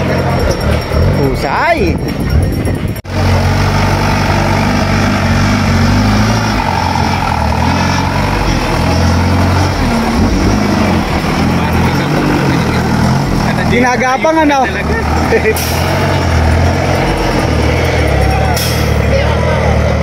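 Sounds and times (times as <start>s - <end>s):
buggy engine running hard: 0.0s - 20.0s.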